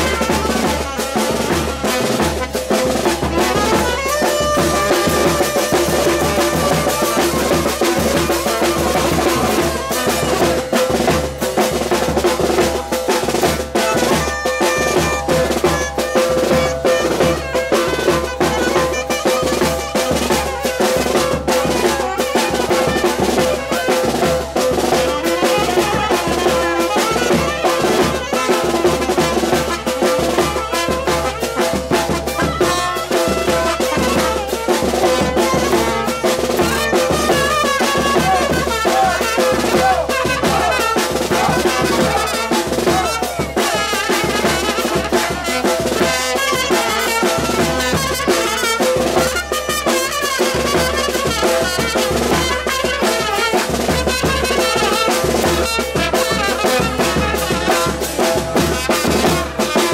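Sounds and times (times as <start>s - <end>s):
drum beat: 0.0s - 59.9s
saxophone: 0.0s - 59.9s
trumpet: 0.0s - 59.9s.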